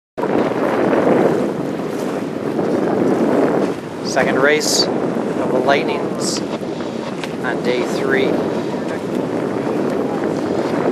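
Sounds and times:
choppy water around boat: 0.2s - 10.9s
wind on microphone: 0.2s - 10.9s.

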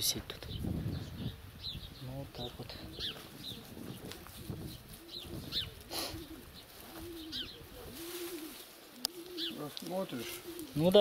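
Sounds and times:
small bird chirping: 0.4s - 7.6s
bird cooing: 2.8s - 11.0s.

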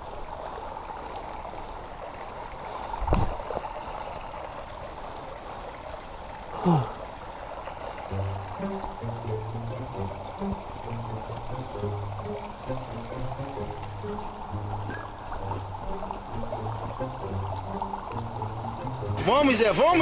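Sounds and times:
stream rushing over rocks: 0.0s - 20.0s
background music with bass line: 8.1s - 19.3s.

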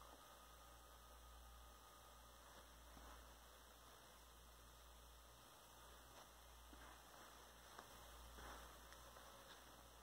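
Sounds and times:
faint electrical hum: 0.0s - 10.0s
light hiss: 0.0s - 10.0s.

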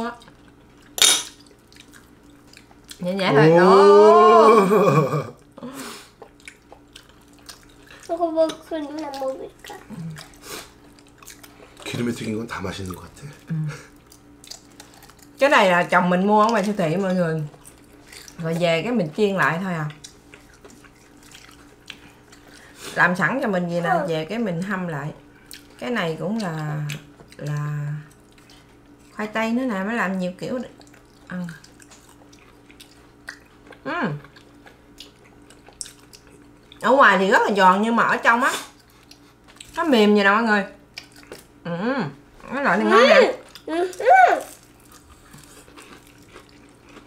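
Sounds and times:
faint steady hum: 0.0s - 47.0s
mouth clicks and smacks chewing: 30.8s - 36.8s.

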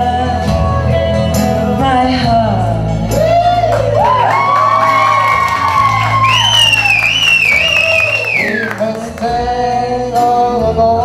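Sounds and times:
person singing with accompaniment: 0.0s - 11.0s
audience whooping: 3.2s - 9.1s.

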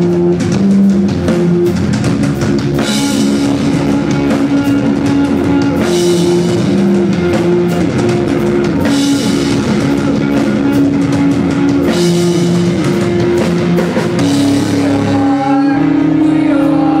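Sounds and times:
drum kit with cymbals: 0.0s - 17.0s
electric guitar chords: 0.0s - 17.0s.

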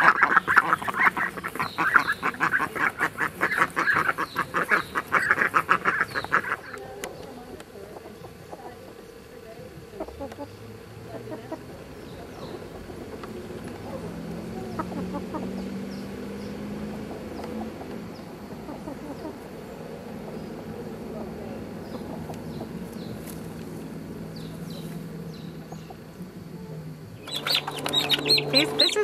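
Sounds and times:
chickens clucking: 0.0s - 29.0s
faint high chirps: 24.2s - 29.0s.

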